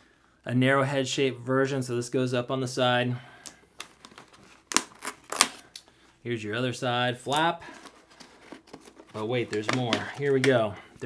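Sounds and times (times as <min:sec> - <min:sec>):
plastic clicks of pad unclipping: 0:03.4 - 0:05.9.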